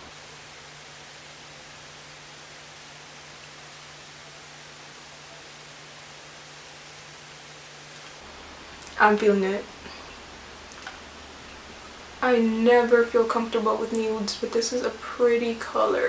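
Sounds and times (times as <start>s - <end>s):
microphone hiss: 0.0s - 16.0s.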